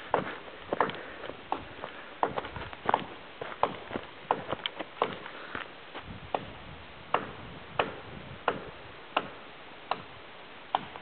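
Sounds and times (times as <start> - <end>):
footsteps on dirt trail: 0.0 - 6.6.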